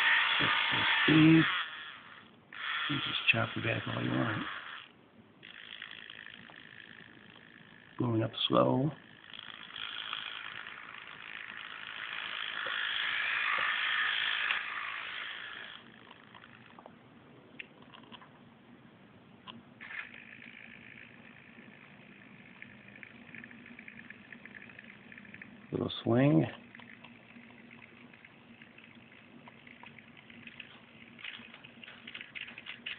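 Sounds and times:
small electric motor whirring: 0.0 - 16.8, 19.8 - 32.9
low steady hum: 0.0 - 32.9.

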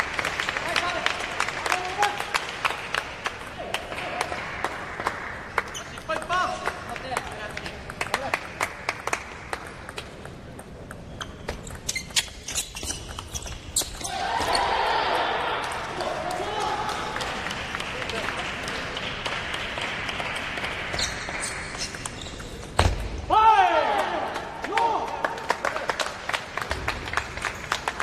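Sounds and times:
people clapping: 0.0 - 9.8, 15.5 - 22.2, 23.8 - 28.0
table tennis ball clicking: 5.6 - 13.9.

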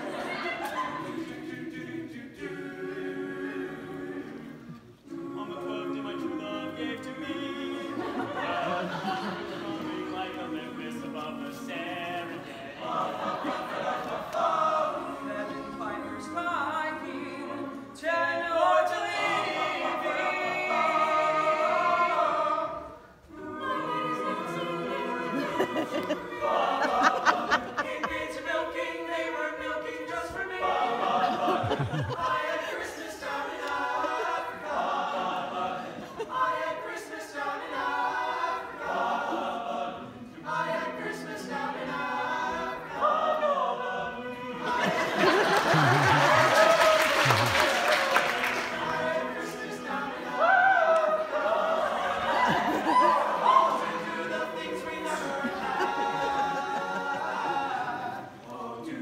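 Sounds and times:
vocal group singing a cappella: 0.0 - 59.0
audience applause: 45.0 - 49.0.

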